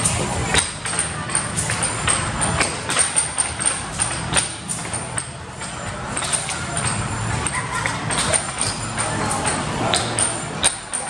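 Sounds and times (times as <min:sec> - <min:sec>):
sharp clacks and knocks: 0:00.0 - 0:11.0.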